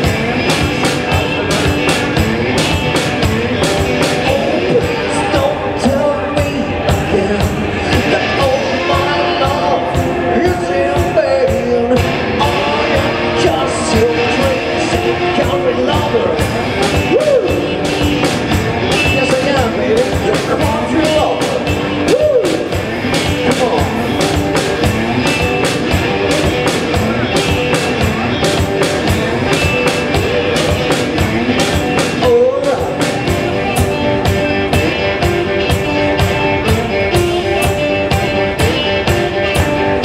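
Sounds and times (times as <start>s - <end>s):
electric guitar with string bends: 0.0s - 40.0s.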